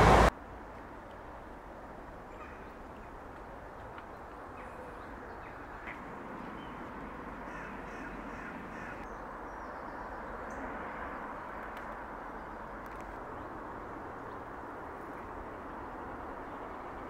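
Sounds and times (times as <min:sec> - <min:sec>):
outdoor background rush: 0:00.0 - 0:17.0
bird calling: 0:02.3 - 0:03.2, 0:04.2 - 0:09.2.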